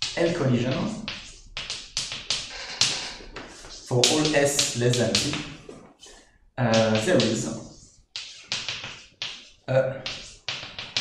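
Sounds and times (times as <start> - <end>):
chalk writing on blackboard: 0.0 - 11.0.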